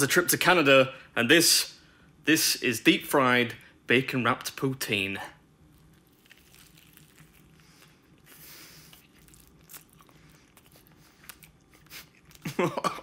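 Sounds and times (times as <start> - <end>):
biting and chewing fried food: 5.6 - 12.8.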